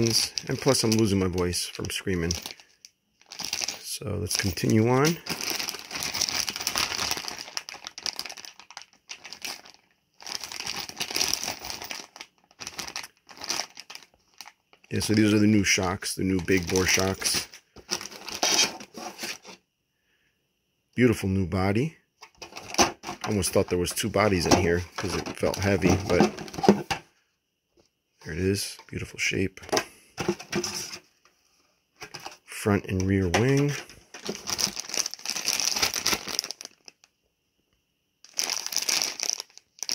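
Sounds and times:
plastic bags crinkling: 0.0s - 19.5s, 22.4s - 26.8s, 33.4s - 37.1s, 38.2s - 39.9s.

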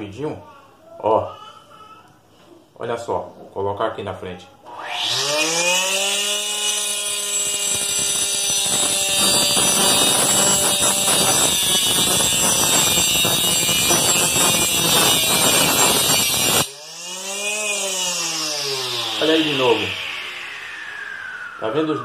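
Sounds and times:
motor whining: 4.7s - 22.0s
disc grinding through pencil: 7.3s - 16.7s.

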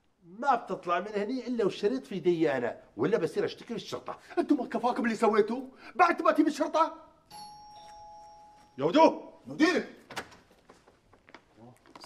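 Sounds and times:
two-tone doorbell chime: 7.3s - 9.0s.

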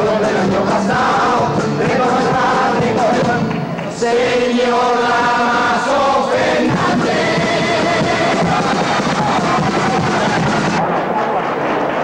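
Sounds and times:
men singing in chorus: 0.0s - 10.3s
drum beating: 0.2s - 4.4s, 6.4s - 11.0s.

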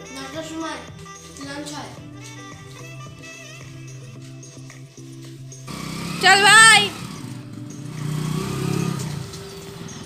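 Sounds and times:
motorcycle pulling away: 5.6s - 10.0s.

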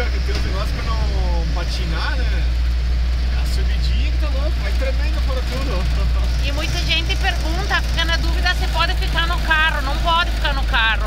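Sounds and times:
vehicle interior rumble: 0.0s - 11.0s.

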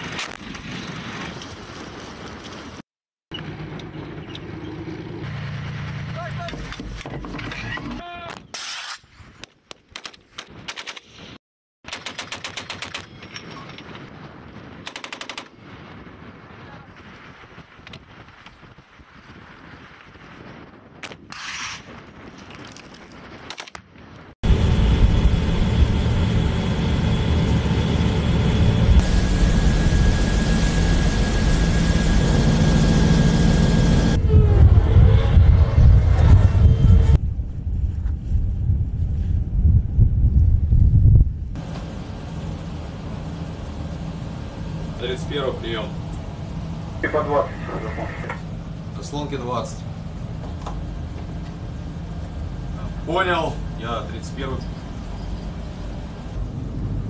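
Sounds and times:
loud steady rumble: 24.4s - 57.0s.

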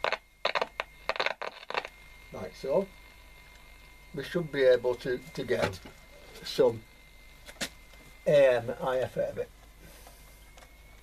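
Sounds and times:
radio speaker crackle bursts: 0.0s - 2.0s.

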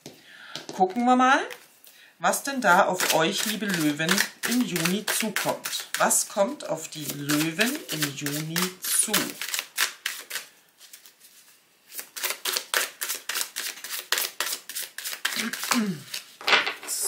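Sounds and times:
cards being shuffled: 3.0s - 6.1s, 7.0s - 17.0s.

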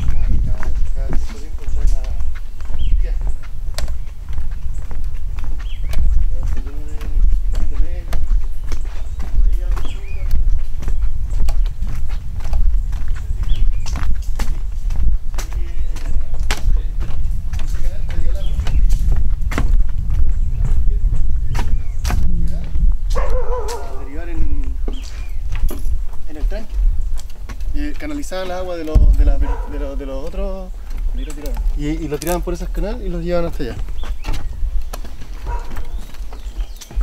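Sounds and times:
low rumble: 0.0s - 28.0s
footsteps on wooden boards: 0.0s - 37.0s.

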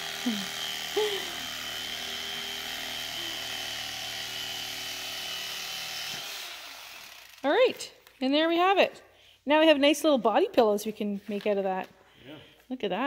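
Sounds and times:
electric knife motor whine: 0.0s - 7.5s.

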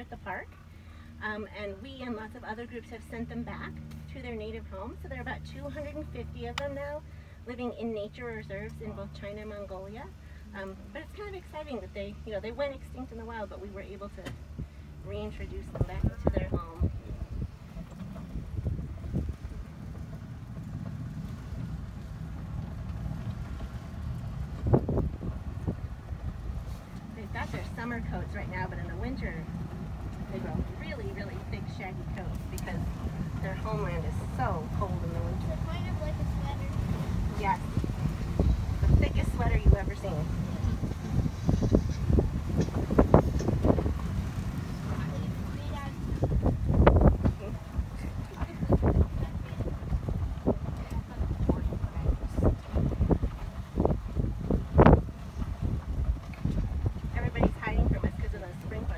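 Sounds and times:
moving vehicle rumble: 0.0s - 58.9s
wind buffeting microphone: 10.9s - 58.9s
faint voices: 44.5s - 52.9s.

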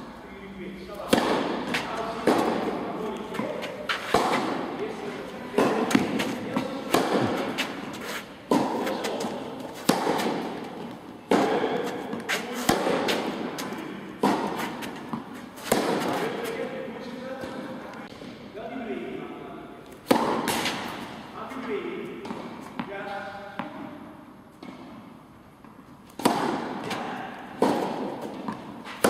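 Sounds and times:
tennis ball bouncing on court: 1.0s - 16.6s, 20.0s - 21.1s, 22.2s - 22.9s, 25.6s - 29.0s
tennis ball hit by racket: 1.0s - 16.7s, 20.0s - 21.1s, 26.1s - 29.0s.

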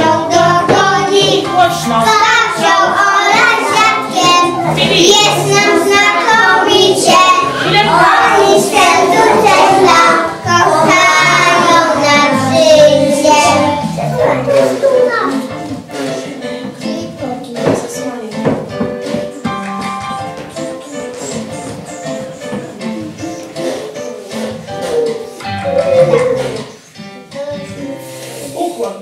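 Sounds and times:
children singing in unison: 0.0s - 15.0s.

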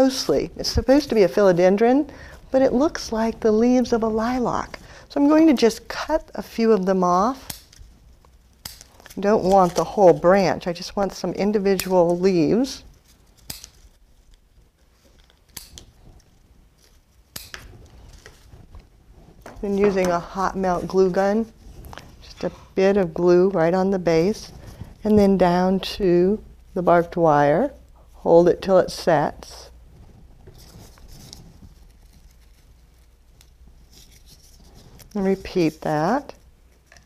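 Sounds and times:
low room hum: 0.0s - 37.0s
scissors snipping leaves: 7.4s - 7.8s, 8.6s - 9.9s, 13.4s - 13.8s.

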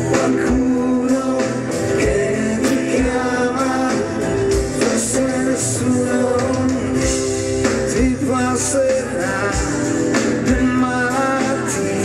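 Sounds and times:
guitars: 0.0s - 12.0s
keyboards: 0.0s - 12.0s
steady drum beat: 0.0s - 12.0s.

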